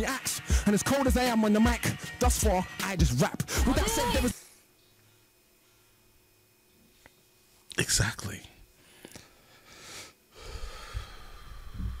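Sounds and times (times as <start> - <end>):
man breathing: 8.8 - 12.0
soft low thumps: 10.9 - 12.0.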